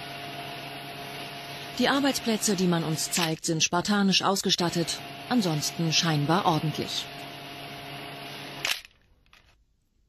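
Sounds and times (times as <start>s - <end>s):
factory machinery hum: 0.0s - 8.8s.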